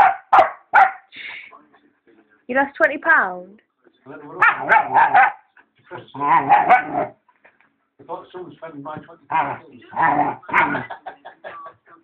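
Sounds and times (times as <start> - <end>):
dog barking: 0.0 - 1.1, 4.4 - 5.5, 6.4 - 7.2.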